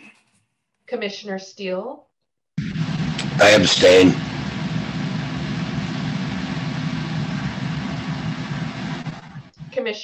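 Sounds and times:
mechanical drone with low hum: 2.6 - 9.8.

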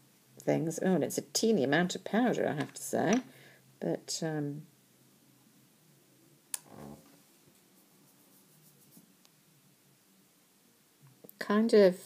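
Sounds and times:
soft rub: 6.6 - 9.3.

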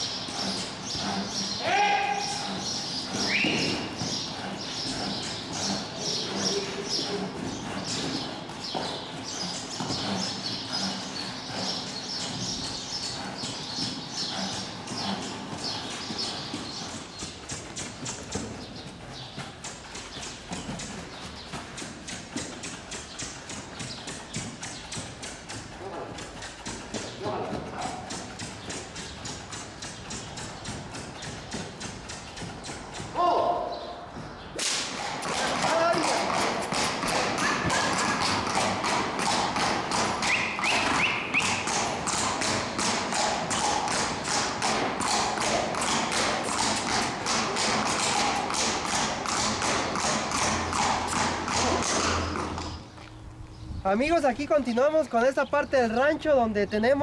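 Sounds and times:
hoofbeats on soft dirt: 0.0 - 57.0
hooves clip-clopping on paving stones: 0.0 - 57.0.

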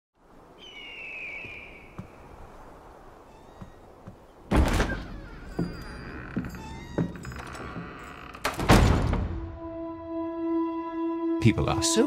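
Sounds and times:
heavy step on wooden floor: 3.6 - 9.4
high drawn-out door creak: 4.5 - 9.3
wooden door thunk: 4.5 - 9.5.

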